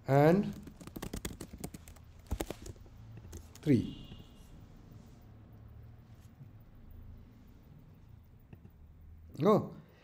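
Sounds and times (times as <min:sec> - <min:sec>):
keyboard keys clicking: 0:00.5 - 0:03.7.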